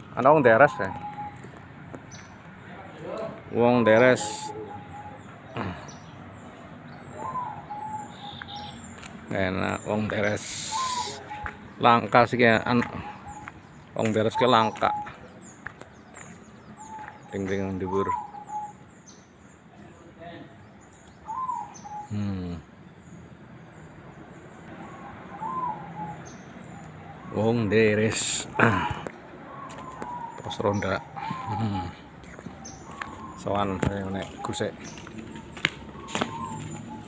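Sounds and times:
bird calling long clear note: 0:06.9 - 0:09.0, 0:10.2 - 0:11.6, 0:16.8 - 0:19.2, 0:20.9 - 0:22.7, 0:24.8 - 0:37.0.

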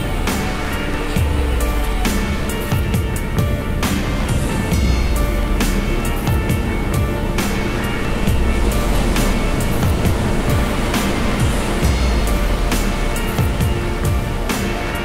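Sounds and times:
music with drum beat and bass: 0:00.0 - 0:15.0.

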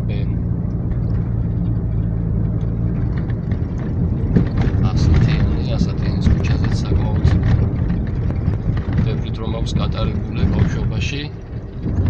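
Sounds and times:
car engine and tyres humming: 0:00.0 - 0:12.0.

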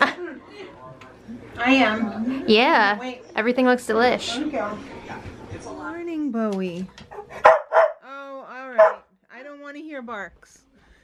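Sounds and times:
dog barking: 0:07.1 - 0:08.1, 0:08.8 - 0:09.1.

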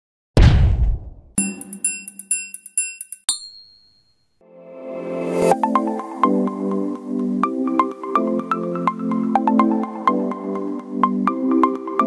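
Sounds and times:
bright bell-like chimes: 0:01.4 - 0:04.3
high ring: 0:01.4 - 0:04.4.

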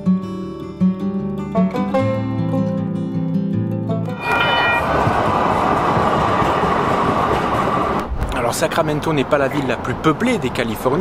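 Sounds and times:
train wheels rolling on rails: 0:04.3 - 0:08.1.

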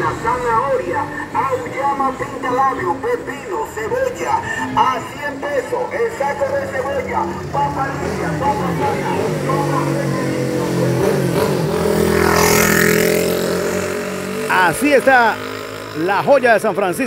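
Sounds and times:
voices in the street: 0:00.0 - 0:17.0.

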